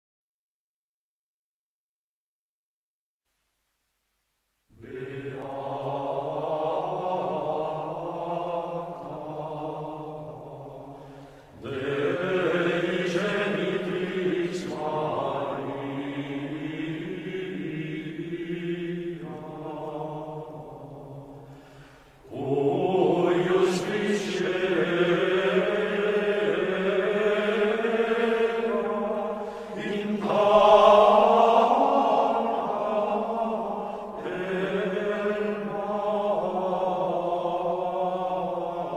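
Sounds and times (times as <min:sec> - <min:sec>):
male choir chanting in unison: 0:04.8 - 0:38.9.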